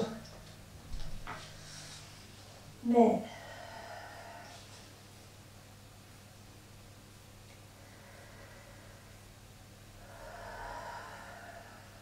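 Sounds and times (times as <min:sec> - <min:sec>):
faint low hum: 0:00.0 - 0:12.0
person exhaling: 0:07.8 - 0:09.2, 0:10.0 - 0:12.0.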